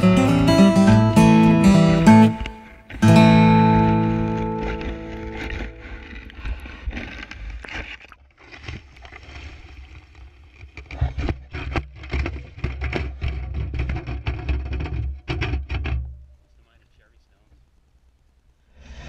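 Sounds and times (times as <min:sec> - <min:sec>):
water splashing and sloshing: 0:03.6 - 0:14.6.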